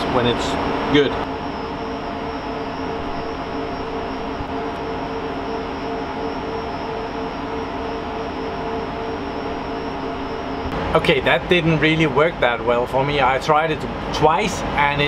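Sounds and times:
server cooling fans whirring: 0.0 - 15.0.

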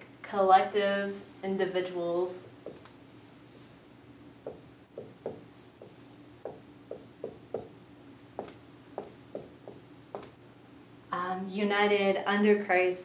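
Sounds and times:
marker squeaking on whiteboard: 2.6 - 3.8, 4.5 - 7.7, 8.4 - 10.4.

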